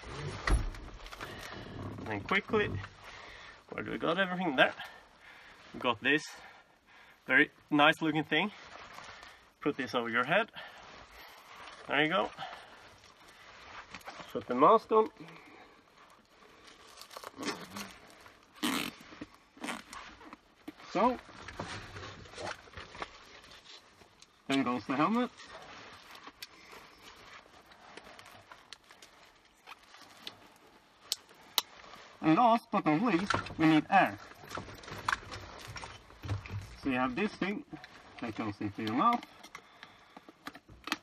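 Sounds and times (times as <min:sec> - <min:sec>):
face mask straps rustling: 0:00.0 - 0:41.0.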